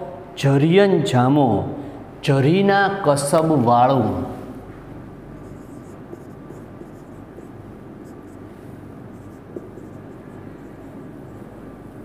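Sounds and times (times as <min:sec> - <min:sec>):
low room hum: 0:00.0 - 0:12.0
marker scratching on whiteboard: 0:05.4 - 0:12.0.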